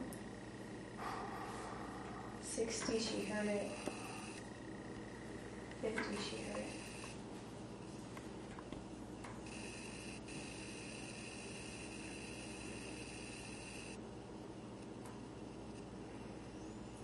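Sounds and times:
low hum: 0.0s - 8.6s.

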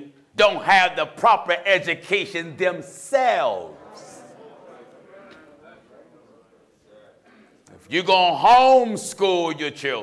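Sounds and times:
murmured voices: 3.3s - 8.0s.

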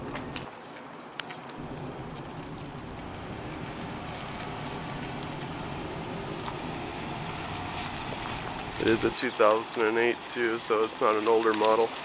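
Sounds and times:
minivan driving slowly past: 1.6s - 9.2s.

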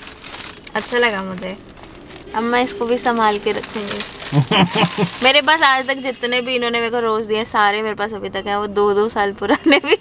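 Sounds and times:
plastic wrapping crinkling: 0.0s - 7.2s.

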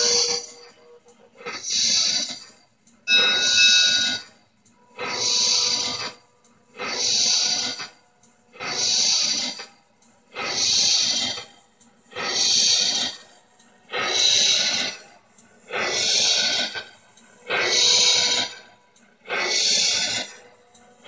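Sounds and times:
hissing steam engine chuffs: 0.0s - 21.0s.

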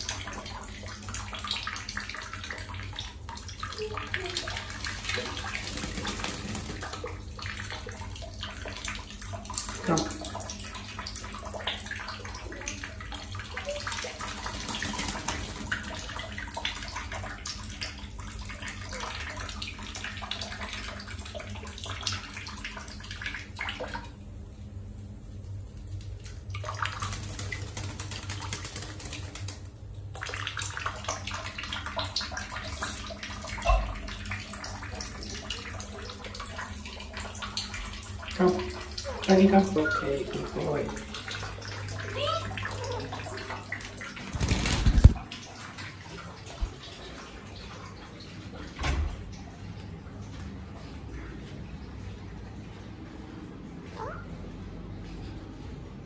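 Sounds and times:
water splashes and drips: 0.0s - 24.5s, 25.1s - 54.3s
water running: 0.0s - 55.6s.

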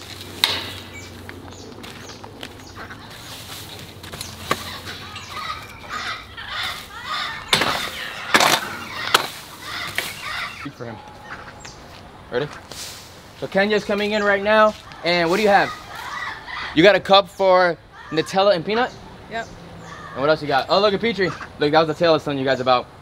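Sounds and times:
rake scraping over dirt: 0.0s - 10.6s
sharp knocks: 0.4s - 0.9s.

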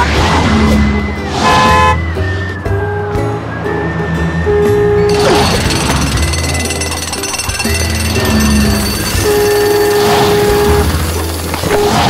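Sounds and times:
cartoon background music: 0.0s - 12.0s
rapid mechanical hammering: 5.1s - 12.0s.

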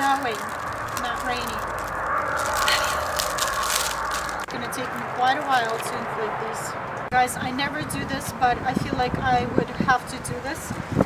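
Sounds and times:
person speaking: 0.0s - 1.8s, 4.2s - 8.5s
foil balloon crinkling: 0.0s - 6.2s.

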